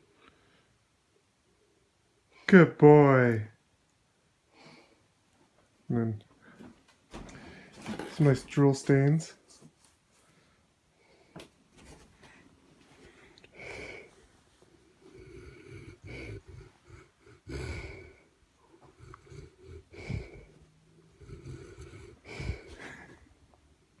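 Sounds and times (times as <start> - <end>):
dog breathing noisily: 13.0 - 23.3.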